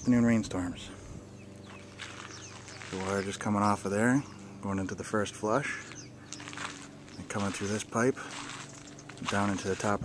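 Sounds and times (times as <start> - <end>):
low steady hum: 0.0 - 10.0
faint bird chirps: 1.3 - 3.0.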